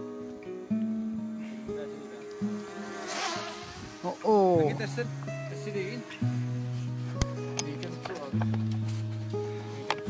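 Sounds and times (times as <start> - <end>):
drone buzzing overhead: 0.0 - 7.6
background music: 0.0 - 10.0.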